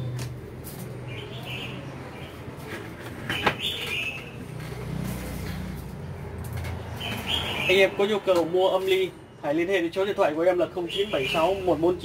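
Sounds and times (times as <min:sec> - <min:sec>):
high bird chirp: 0:01.0 - 0:02.5, 0:03.3 - 0:04.4, 0:06.9 - 0:08.0.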